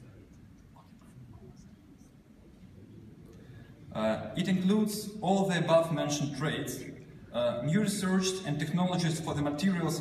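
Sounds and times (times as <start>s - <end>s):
low uneven hum: 0.0s - 10.0s.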